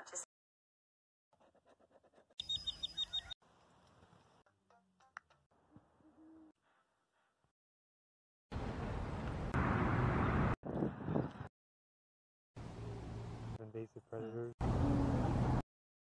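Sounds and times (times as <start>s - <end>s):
high chirps: 2.4s - 3.4s.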